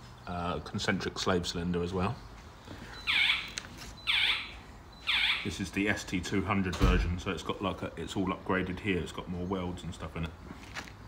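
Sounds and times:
high alarm-like chirp falling: 0:02.8 - 0:05.8.

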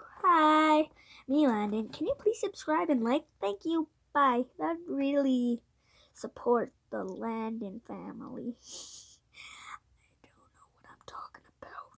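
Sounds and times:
child whispering: 0:08.4 - 0:12.0.

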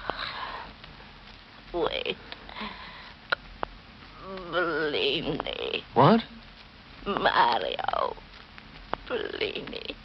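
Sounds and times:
woman breathing laboriously: 0:00.0 - 0:01.2, 0:02.2 - 0:03.3.

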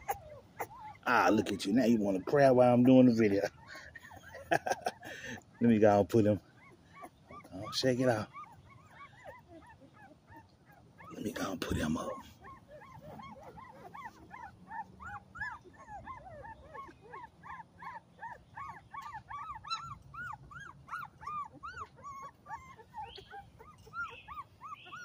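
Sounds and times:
puppies whimpering and squealing: 0:00.0 - 0:25.0.

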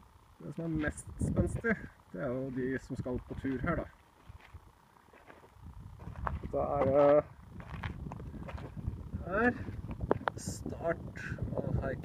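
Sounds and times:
footsteps on rocky ground: 0:02.4 - 0:10.5
low rumble: 0:05.6 - 0:12.0.

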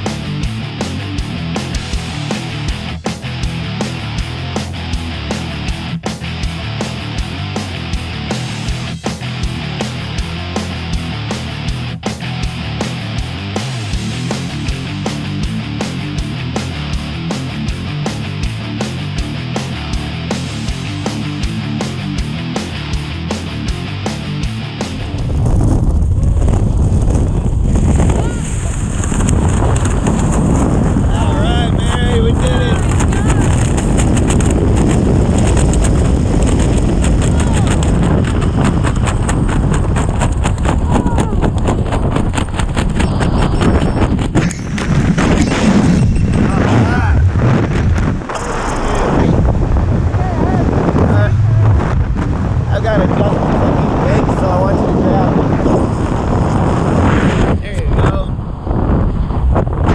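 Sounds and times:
loud wind on microphone: 0:12.4 - 0:59.9
indistinct voices: 0:43.0 - 0:44.6, 0:46.3 - 0:55.4.

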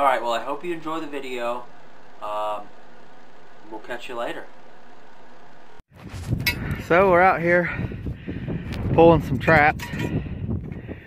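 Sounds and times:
man talking: 0:00.0 - 0:02.8, 0:03.6 - 0:04.6
wind rumbling on microphone: 0:05.9 - 0:11.0.

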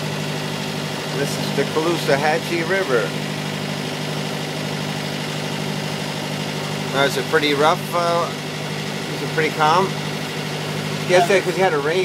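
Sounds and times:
motorboat engine running: 0:00.0 - 0:12.0.

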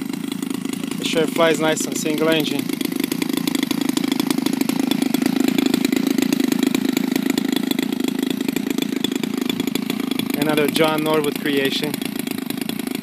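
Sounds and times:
small engine running: 0:00.0 - 0:13.0.

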